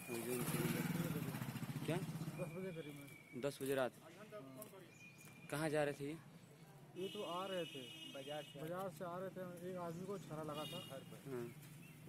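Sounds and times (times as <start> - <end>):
motorcycle engine running: 0.0 - 3.0.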